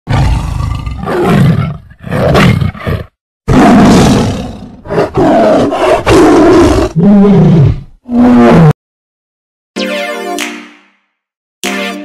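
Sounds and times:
lion roars: 0.1 - 8.8.

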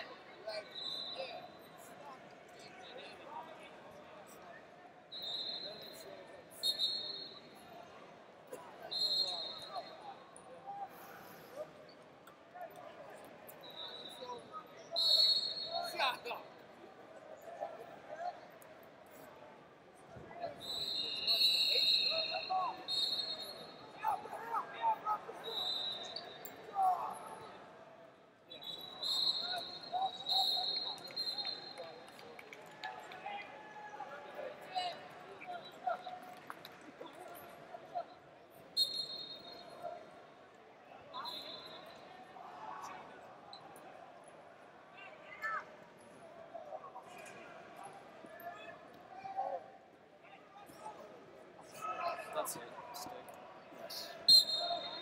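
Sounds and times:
short high-pitched whistle blasts: 14.9 - 15.9, 20.6 - 23.7, 38.8 - 39.6, 54.2 - 55.0.

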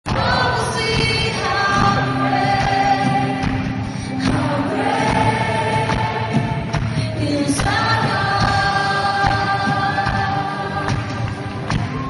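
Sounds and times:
acoustic guitars: 0.1 - 12.0
singers holding long notes: 0.1 - 12.0.

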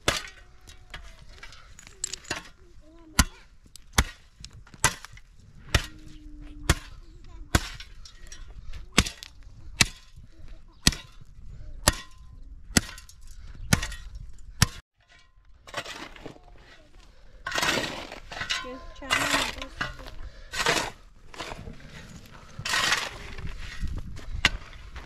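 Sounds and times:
shovel hitting stony ground: 0.0 - 25.0
soil and stones scraping: 0.0 - 25.0.

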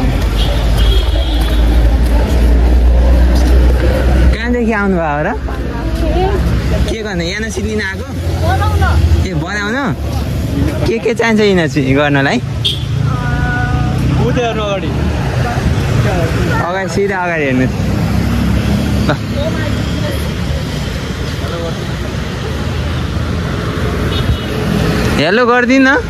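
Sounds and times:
road traffic rumble: 0.0 - 26.0.

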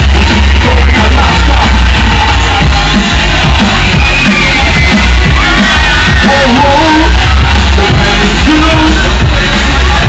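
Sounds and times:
drum and bass music: 0.0 - 10.0
heavy bass: 0.0 - 10.0.

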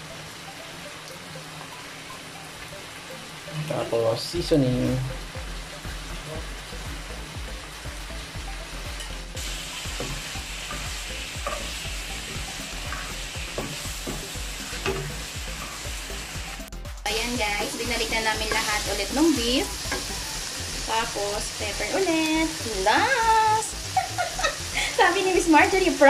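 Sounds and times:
meat sizzling in a wok: 4.8 - 26.0
spatula scraping and tapping pan: 9.9 - 11.8, 12.4 - 15.2.

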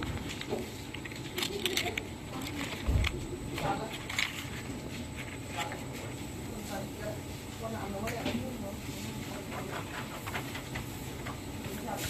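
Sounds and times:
wax sheets crackling and rustling: 0.0 - 12.0.

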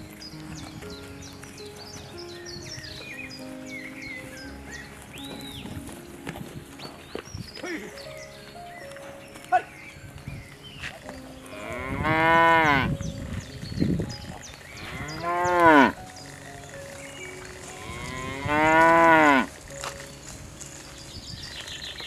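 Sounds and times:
cattle mooing: 11.5 - 12.9, 14.8 - 16.0, 17.6 - 19.5.

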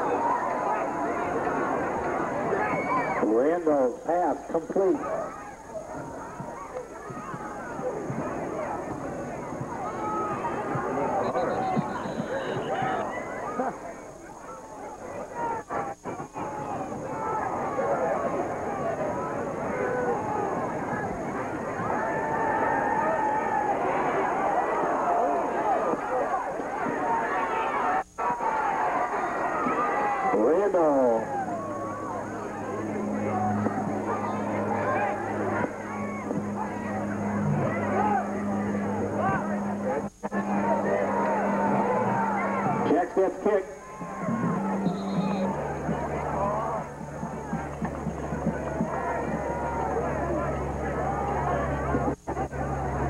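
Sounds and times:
crowd shouting and cheering: 0.0 - 53.0
steady low hum: 0.0 - 53.0.

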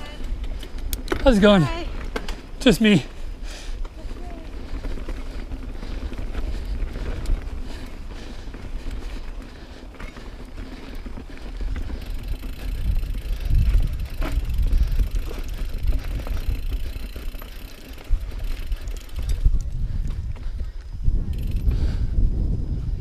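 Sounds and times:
bike clicks and knocks: 0.0 - 2.8, 8.8 - 20.6, 21.3 - 21.7
bike tyres rumbling over stones: 0.0 - 23.0.

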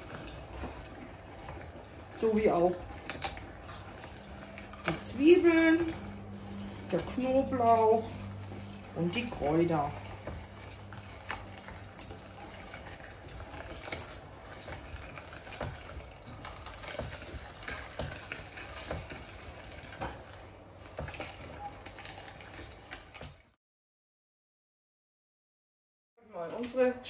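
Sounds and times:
meat grinder mincing vegetables: 0.0 - 23.3.

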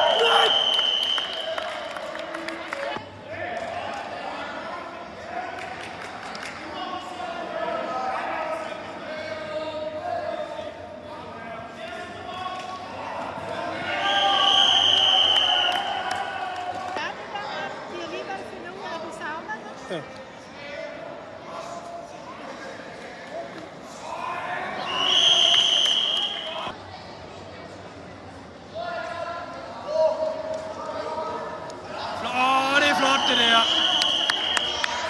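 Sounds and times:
referee's whistle blast: 0.0 - 1.4, 14.0 - 15.8, 33.0 - 34.8
people shouting in indoor hall: 0.0 - 1.8.

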